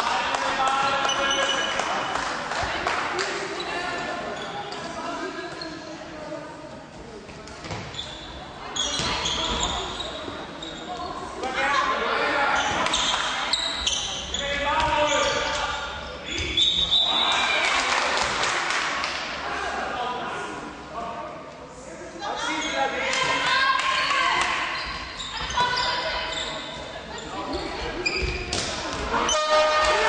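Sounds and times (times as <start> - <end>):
ball bouncing on hall floor: 7.3 - 8.1, 27.8 - 29.1
voices calling and shouting: 22.2 - 30.0.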